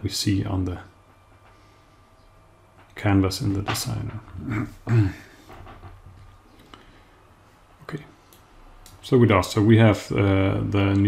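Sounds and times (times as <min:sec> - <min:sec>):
man coughing: 0:04.4 - 0:05.3.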